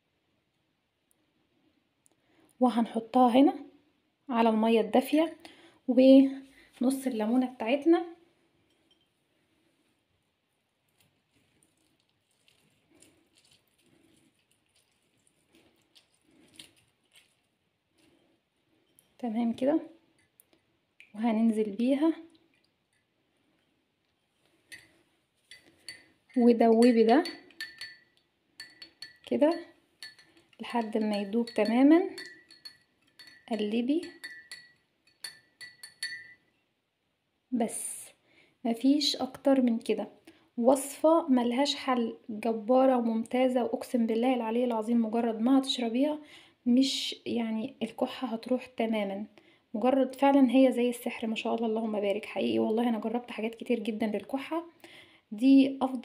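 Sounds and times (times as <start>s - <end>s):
lemon squelching on citrus reamer: 10.9s - 18.2s
metal spoon clinking in glass mug: 24.7s - 36.6s.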